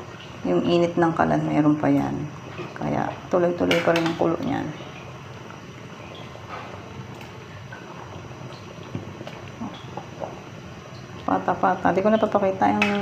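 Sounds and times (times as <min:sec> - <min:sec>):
soup bubbling in a pot: 0:00.0 - 0:13.0.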